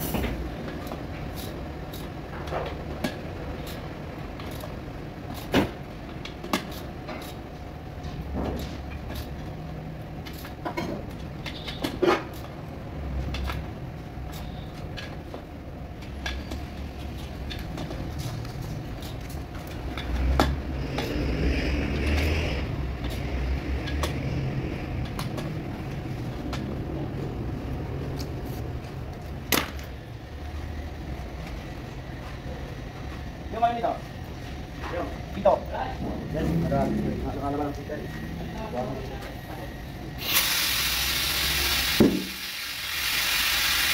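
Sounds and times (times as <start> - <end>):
low workshop hum: 0.0 - 43.9
short hiss: 40.2 - 43.9.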